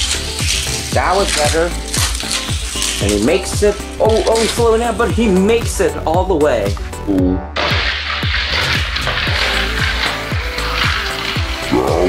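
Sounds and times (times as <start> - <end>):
dense hissing layer: 0.0 - 5.5, 7.6 - 12.0.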